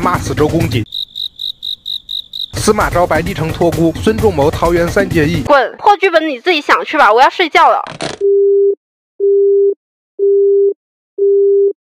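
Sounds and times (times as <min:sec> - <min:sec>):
telephone busy tone beeps: 0:08.2 - 0:11.8.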